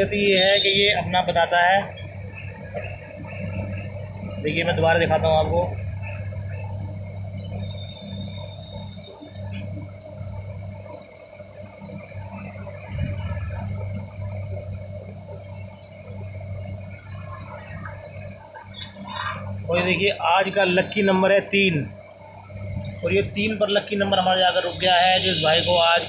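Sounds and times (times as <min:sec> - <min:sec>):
low electrical hum: 0:00.0 - 0:26.0
thin high whine: 0:00.0 - 0:26.0.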